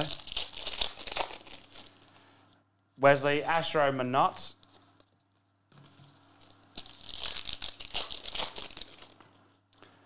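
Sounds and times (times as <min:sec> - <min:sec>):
foil wrapper tearing and crinkling: 0:00.0 - 0:02.0, 0:06.3 - 0:09.2.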